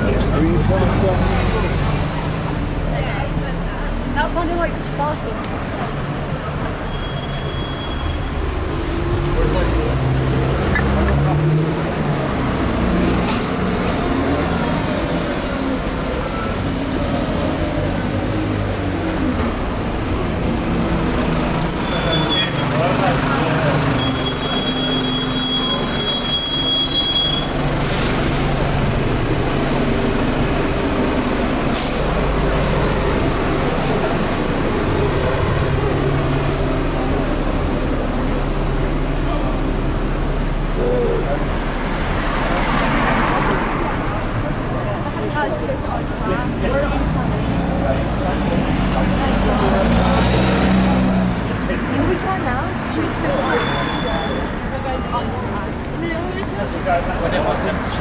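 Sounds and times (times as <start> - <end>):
bus diesel engine running: 0.0 - 53.2
passers-by talking: 0.0 - 58.0
street traffic: 0.0 - 58.0
high steady squeal: 23.8 - 27.6.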